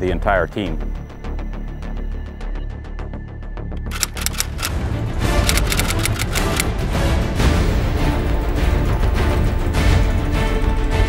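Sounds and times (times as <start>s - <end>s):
typewriter key clicks: 3.8s - 4.7s, 5.5s - 6.7s.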